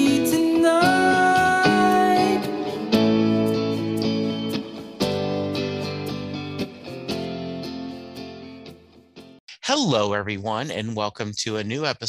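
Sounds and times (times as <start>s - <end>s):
strummed guitar music: 0.0s - 9.4s
man speaking: 9.5s - 12.0s.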